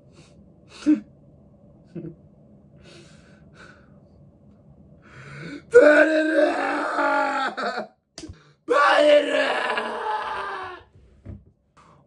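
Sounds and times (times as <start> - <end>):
man wailing in grief: 5.7 - 7.9, 8.7 - 10.8.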